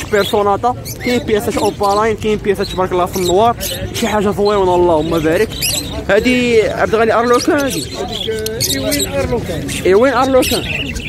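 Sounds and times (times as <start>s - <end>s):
caged birds chirping: 0.0s - 11.0s
people talking: 0.0s - 11.0s.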